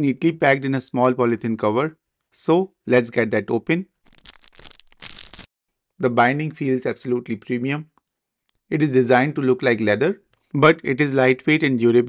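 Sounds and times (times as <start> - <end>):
plastic sleeve crinkling: 4.0 - 5.5.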